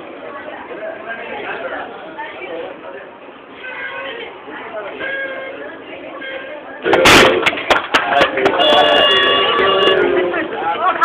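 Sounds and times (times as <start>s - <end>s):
indistinct voices talking: 0.4s - 11.0s.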